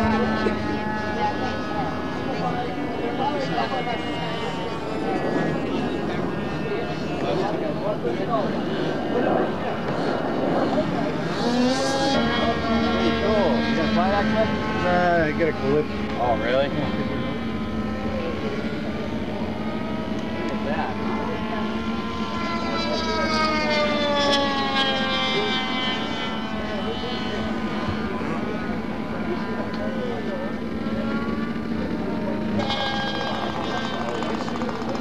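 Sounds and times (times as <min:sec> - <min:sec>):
model engine droning: 0:00.0 - 0:35.0.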